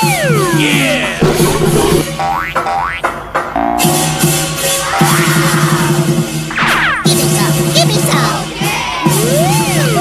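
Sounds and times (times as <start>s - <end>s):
cartoon boing sound effects: 0.0s - 4.2s
bouncy music: 0.0s - 10.0s.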